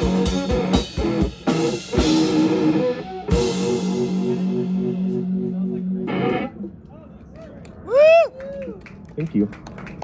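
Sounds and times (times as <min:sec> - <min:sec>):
rock band final chord: 0:00.0 - 0:06.5
person whooping: 0:07.8 - 0:08.8.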